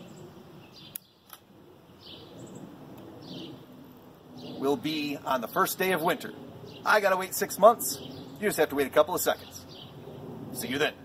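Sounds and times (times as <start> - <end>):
small sharp clicks: 0.9 - 1.5.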